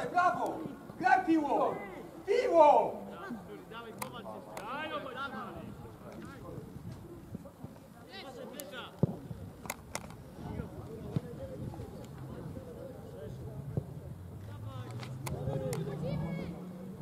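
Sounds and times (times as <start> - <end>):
players shouting: 0.0 - 3.4.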